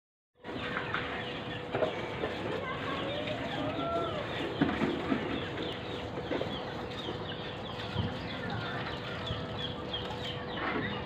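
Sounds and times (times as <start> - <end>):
small birds chirping: 0.5 - 11.0.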